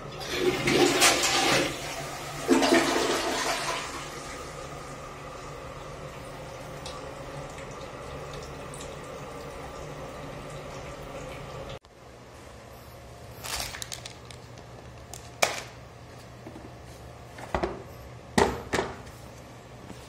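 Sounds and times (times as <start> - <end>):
cistern refilling with running water: 0.0 - 11.8
toilet flush water rushing: 0.0 - 11.8.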